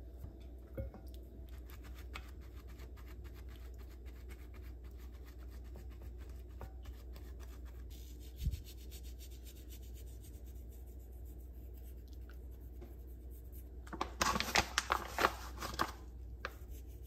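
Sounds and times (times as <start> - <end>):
faint low hum: 0.0 - 17.0
paper towel dabbing skin: 1.5 - 17.0.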